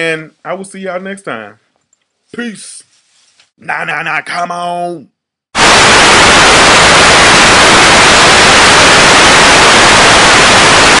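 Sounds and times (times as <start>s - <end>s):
loud television static hiss: 5.6s - 11.0s.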